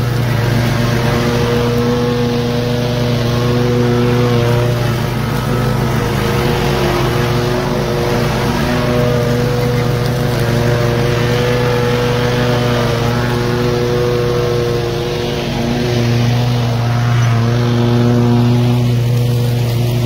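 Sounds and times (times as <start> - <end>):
riding mower engine drone: 0.0 - 20.0.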